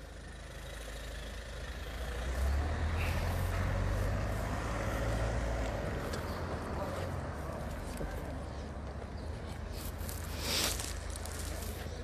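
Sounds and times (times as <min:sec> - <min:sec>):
car driving past: 0:01.7 - 0:07.7.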